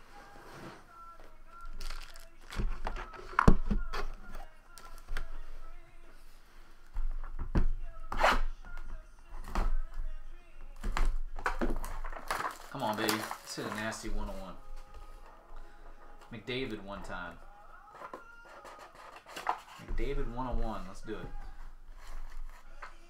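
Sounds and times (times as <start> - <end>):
faint background voices or music: 0.0 - 23.0.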